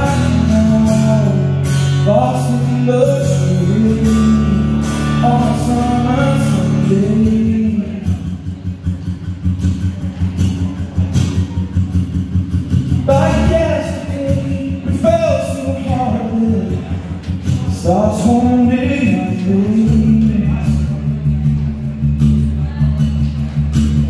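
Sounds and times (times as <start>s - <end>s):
man singing: 0.0s - 8.7s, 12.8s - 21.8s
strummed acoustic guitar: 0.0s - 24.0s.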